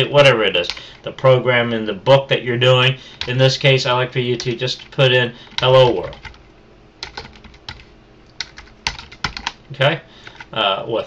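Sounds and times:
typing on computer keyboard: 3.2 - 3.4, 4.4 - 10.5.

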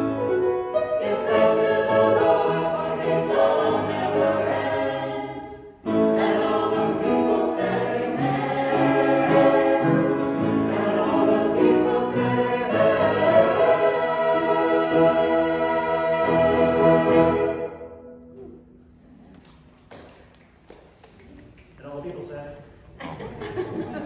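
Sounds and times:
choir singing in harmony: 0.1 - 18.1.

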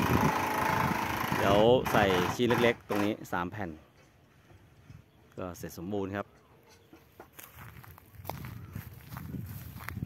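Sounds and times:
footsteps on grassy dirt: 6.7 - 10.0.

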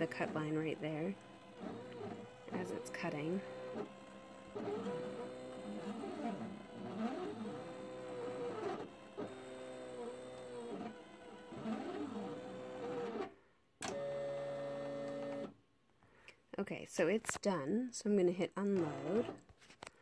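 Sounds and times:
steady motor hum: 0.0 - 13.2
cutting machine motors whining: 0.0 - 15.6, 18.6 - 19.4.

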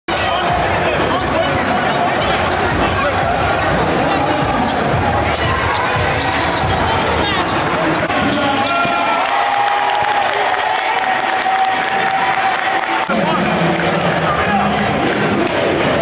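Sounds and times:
crowd voices: 0.1 - 16.0.

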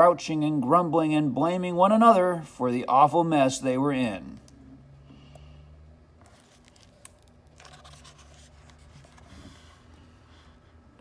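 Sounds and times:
paper page being turned: 6.2 - 9.8.

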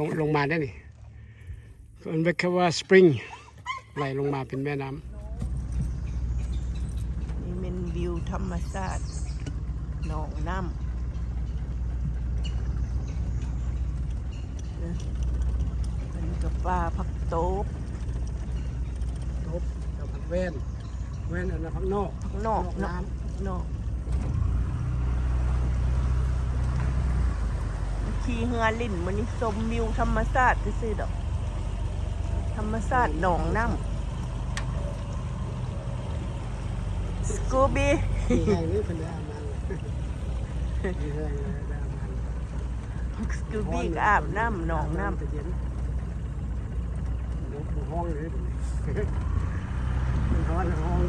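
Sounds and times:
boat motor running: 0.0 - 51.0
water: 0.0 - 51.0.

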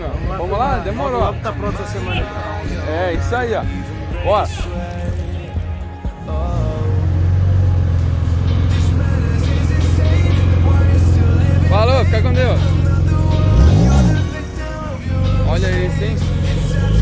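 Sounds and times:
music with singing: 0.0 - 17.0
car engine pulling away: 6.3 - 17.0.

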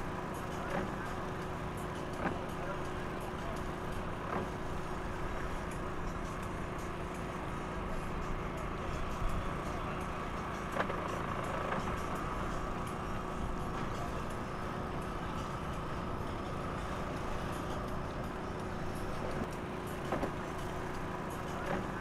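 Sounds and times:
engine idling: 0.0 - 22.0.

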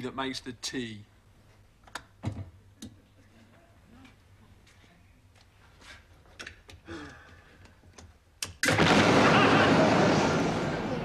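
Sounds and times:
kettle explosion blast: 8.6 - 11.0.

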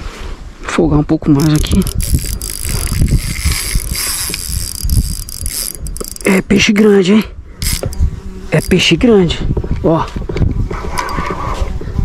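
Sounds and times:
fishing reel clicking: 1.4 - 8.0, 8.6 - 9.0.

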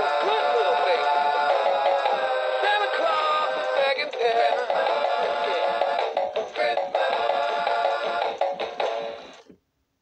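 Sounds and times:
toy singing over music: 0.0 - 9.2
toy drumming on bongos: 4.0 - 9.2.

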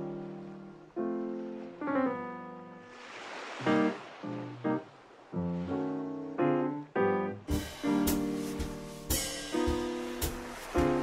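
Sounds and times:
swing jazz: 7.5 - 11.0
hissing wash: 7.8 - 11.0.

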